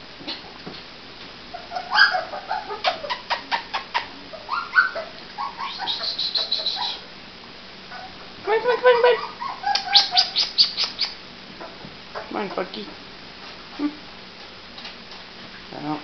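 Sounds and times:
puppy whimpering: 1.5 - 7.0, 7.9 - 11.2.

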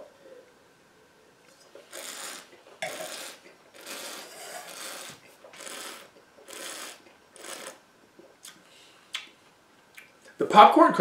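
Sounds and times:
slurping hiss of wine tasting: 1.8 - 7.8.

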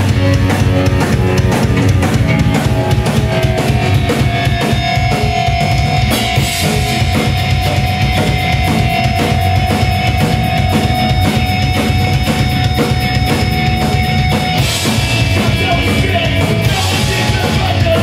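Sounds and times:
bass guitar: 0.0 - 18.0
distorted electric guitar: 0.0 - 18.0
drum kit with cymbals: 0.0 - 18.0.

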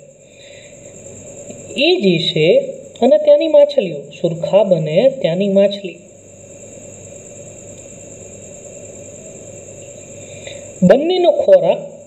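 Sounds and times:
faint high-pitched whine: 0.0 - 12.0.

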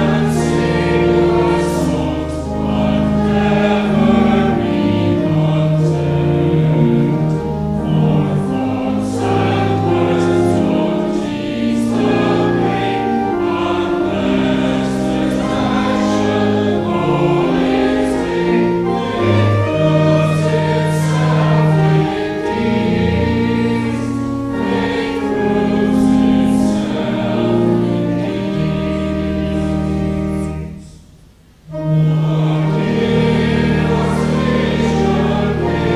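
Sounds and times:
mixed choir singing in harmony: 0.0 - 31.0, 31.7 - 35.9.

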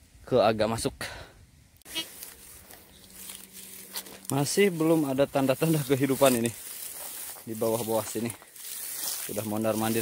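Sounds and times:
footsteps in dry grass: 1.8 - 10.0.

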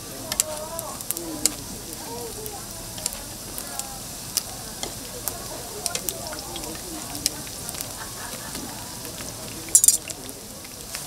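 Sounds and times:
food sizzling in oil: 0.0 - 11.0.

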